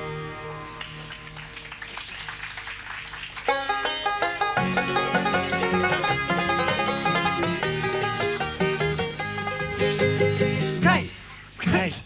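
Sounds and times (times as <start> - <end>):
bluegrass string band playing softly: 0.0 - 2.4, 3.4 - 11.2
quick picked string notes: 3.5 - 11.0.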